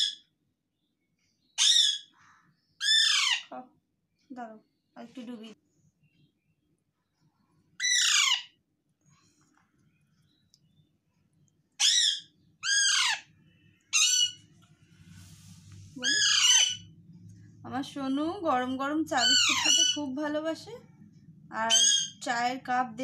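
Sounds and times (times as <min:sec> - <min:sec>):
parakeet squawking: 0:01.6 - 0:02.2, 0:02.8 - 0:03.6, 0:07.8 - 0:08.6, 0:11.8 - 0:14.4, 0:16.0 - 0:17.0, 0:19.1 - 0:20.2, 0:21.6 - 0:22.3.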